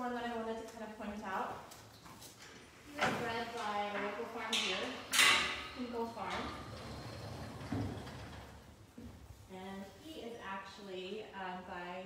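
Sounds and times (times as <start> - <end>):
sliding door rolling on track: 5.0 - 8.8.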